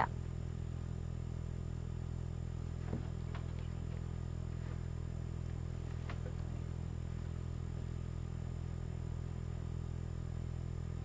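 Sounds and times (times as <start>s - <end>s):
low-pitched hum: 0.0s - 11.0s.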